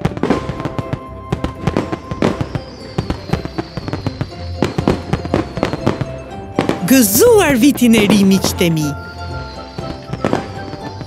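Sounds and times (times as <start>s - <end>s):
background music: 0.0s - 11.0s
fireworks bangs and crackling pops: 0.0s - 11.0s.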